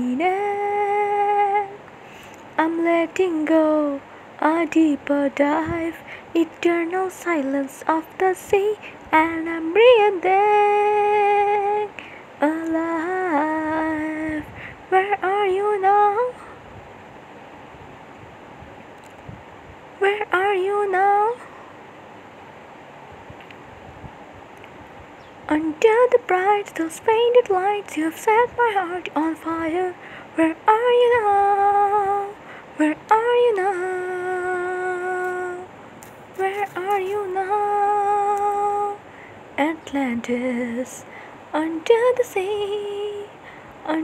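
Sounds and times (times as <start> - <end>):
high solo singing voice: 0.0 - 16.7, 20.0 - 21.7, 25.2 - 44.0
faint steady hiss: 0.0 - 44.0.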